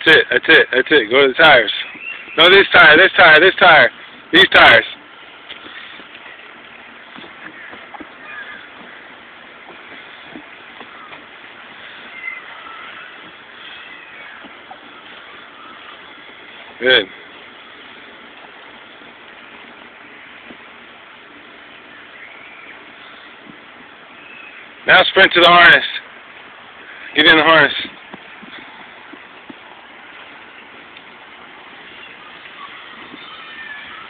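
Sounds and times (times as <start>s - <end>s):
faint distant voices: 0.0s - 34.0s.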